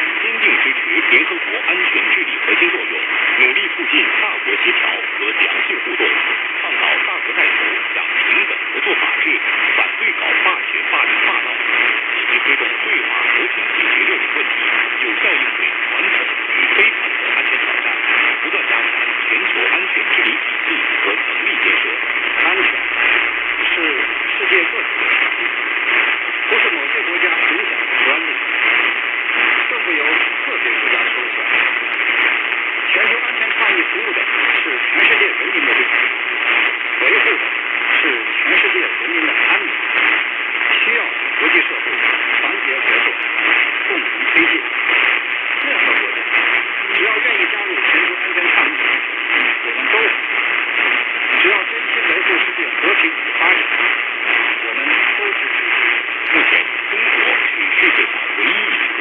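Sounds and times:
radio hiss and static: 0.0s - 59.0s
voice over radio: 0.0s - 59.0s.

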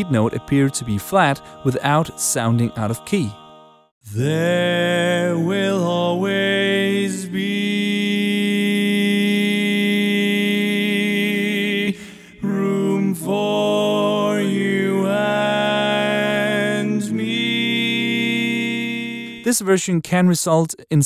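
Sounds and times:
a cappella barbershop harmony singing: 0.0s - 19.5s.

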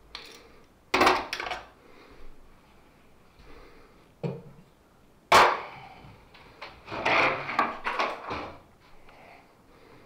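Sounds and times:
scraping and knocking of wood: 6.8s - 8.6s.

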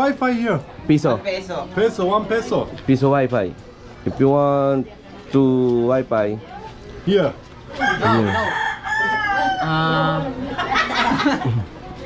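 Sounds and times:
rooster crowing: 7.8s - 10.4s
person laughing: 10.6s - 11.7s.

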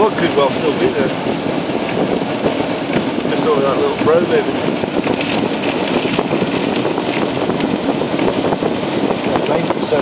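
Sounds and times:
rain pattering on windscreen: 0.0s - 10.0s
strong wind buffeting a car: 0.0s - 10.0s.

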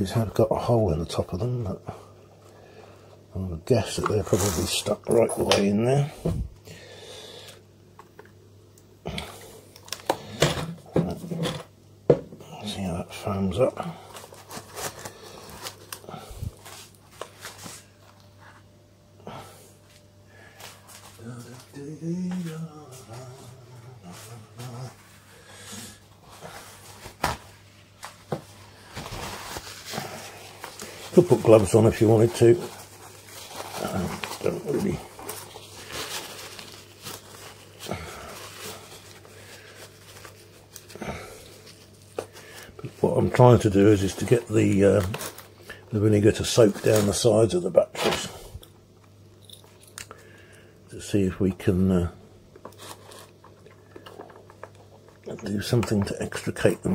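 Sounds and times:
paper towel rubbing on plastic: 3.8s - 5.3s, 28.5s - 40.9s.

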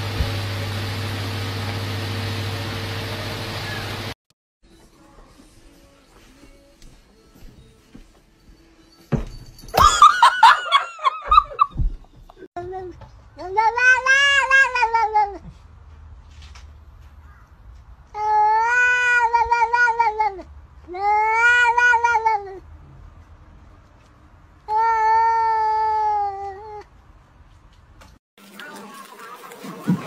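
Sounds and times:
cat meowing: 18.2s - 22.6s.

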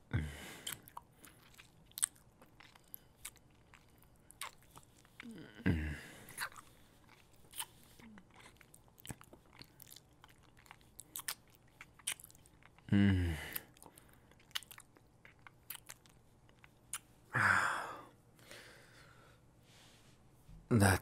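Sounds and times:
man breathy moan: 0.1s - 0.7s, 5.2s - 6.2s, 12.9s - 13.6s, 17.3s - 18.8s
man murmuring mm: 5.2s - 6.3s, 12.9s - 13.7s.

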